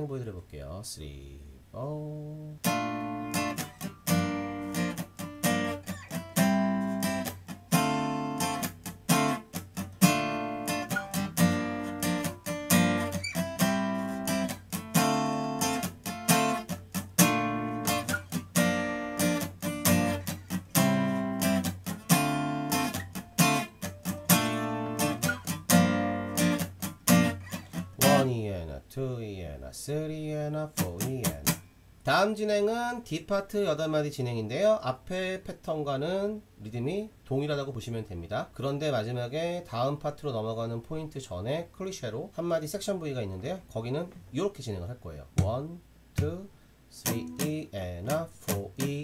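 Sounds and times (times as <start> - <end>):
acoustic guitar strumming: 2.6 - 28.4, 30.7 - 31.7, 46.2 - 49.0.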